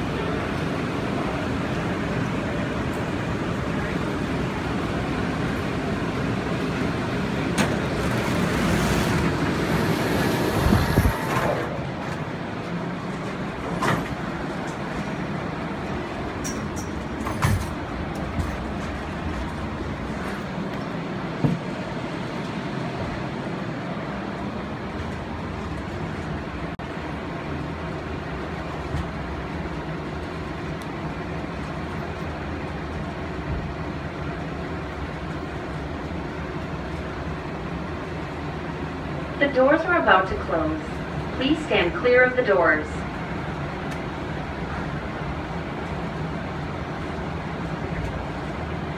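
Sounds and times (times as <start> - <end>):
tram low hum: 0.0 - 48.9
tram rushing into platform: 0.0 - 48.9.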